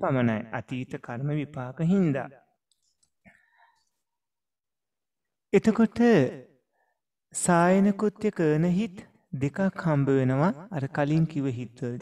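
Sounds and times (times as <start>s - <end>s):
man speaking in a lecture: 0.0s - 2.5s, 5.6s - 6.6s, 7.3s - 12.0s.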